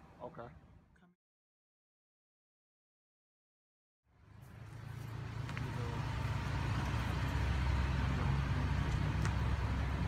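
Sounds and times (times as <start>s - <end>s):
pickup truck engine rumbling past: 4.5s - 10.0s.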